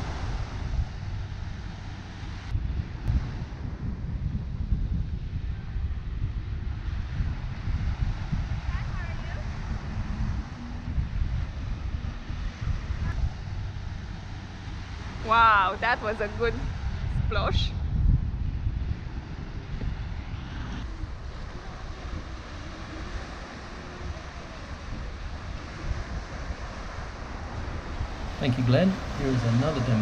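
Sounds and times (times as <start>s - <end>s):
small waves breaking on beach: 0.0s - 17.8s, 20.8s - 30.0s
wind buffeting microphone: 0.0s - 30.0s.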